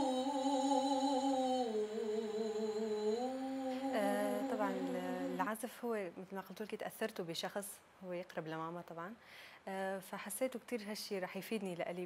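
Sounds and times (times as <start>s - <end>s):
woman humming melody: 0.0s - 5.5s.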